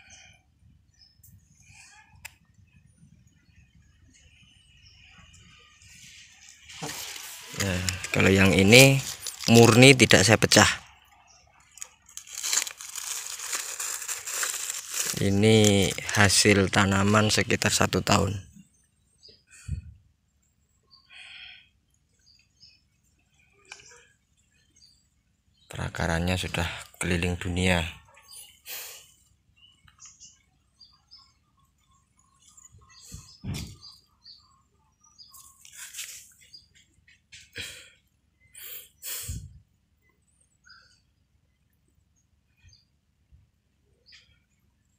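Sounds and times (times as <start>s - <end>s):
small birds chirping: 0.0s - 44.9s
rustling: 5.9s - 10.1s, 11.7s - 16.8s, 35.4s - 36.4s
plastic sheeting crinkling: 6.7s - 10.1s, 11.8s - 17.4s.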